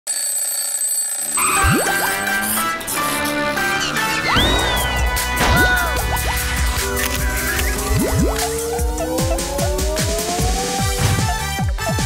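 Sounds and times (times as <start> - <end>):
jingle music: 1.2 - 12.0
chord with rising sweep: 1.4 - 10.9.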